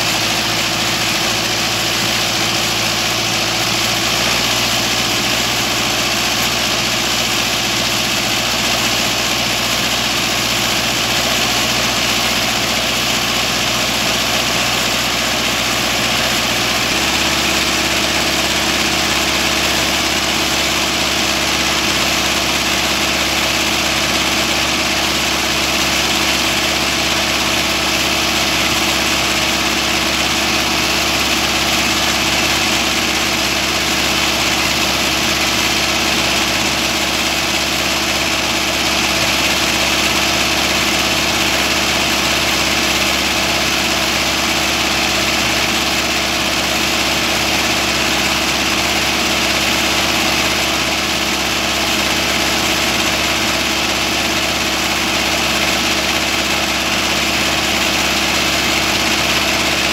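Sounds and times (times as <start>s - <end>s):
tractor diesel engine idling: 0.0s - 59.9s.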